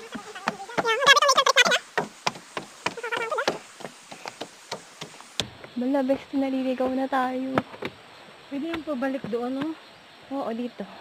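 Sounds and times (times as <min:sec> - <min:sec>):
footsteps on wooden stairs: 0:00.0 - 0:05.7.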